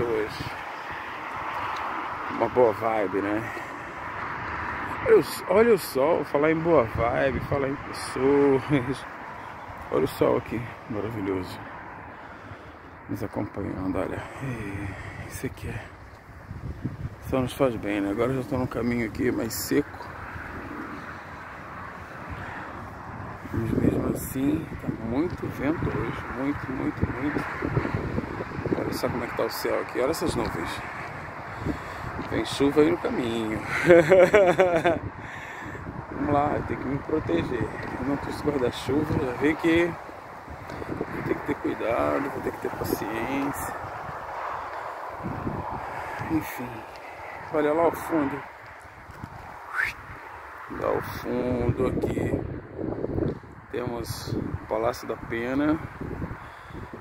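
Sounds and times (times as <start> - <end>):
man's voice: 0.0 - 0.6, 17.2 - 20.0, 32.2 - 35.6, 36.2 - 40.0, 41.1 - 43.8, 46.2 - 48.5, 50.7 - 52.5
distant motorway traffic: 0.0 - 57.0
wind: 0.0 - 57.0.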